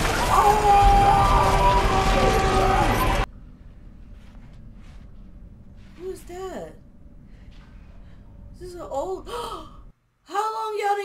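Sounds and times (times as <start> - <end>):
low steady rumble: 3.1 - 10.2
person gasping: 9.2 - 9.9.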